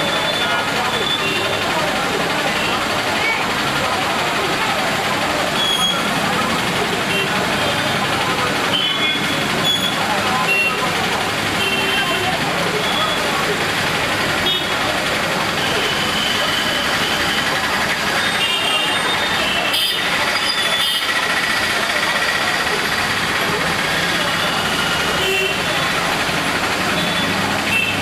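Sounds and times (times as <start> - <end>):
heavy rain on street: 0.0 - 28.0
passing vehicle traffic: 0.0 - 28.0.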